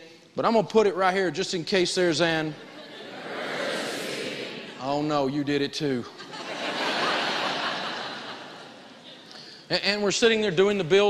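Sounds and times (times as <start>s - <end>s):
audience laughing: 2.5s - 5.0s, 6.0s - 9.4s.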